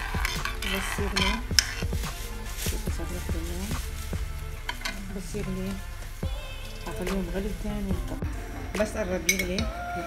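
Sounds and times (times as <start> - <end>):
spoon stirring liquid in saucepan: 0.0 - 2.6
spoon clinking against pot: 9.2 - 9.8.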